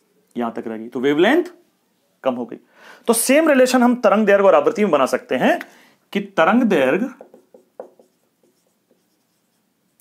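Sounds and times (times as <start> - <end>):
marker scratching on whiteboard: 7.2 - 10.0.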